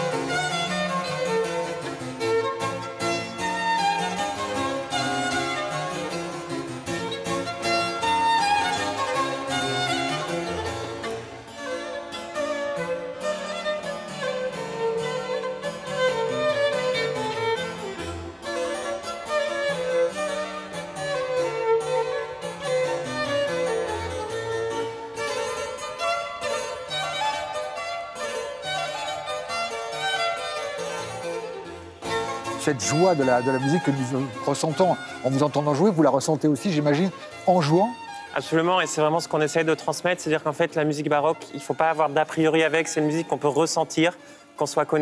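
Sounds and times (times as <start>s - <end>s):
bowed violin melody: 0.0s - 45.0s
harpsichord plucked notes: 0.0s - 45.0s.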